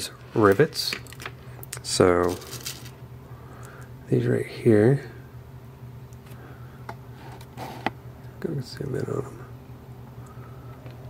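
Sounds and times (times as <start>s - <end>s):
low steady hum: 0.0s - 11.0s.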